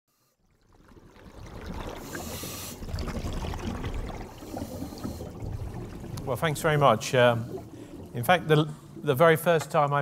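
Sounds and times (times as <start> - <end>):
water trickling: 0.4 - 10.0
water splash: 0.7 - 10.0.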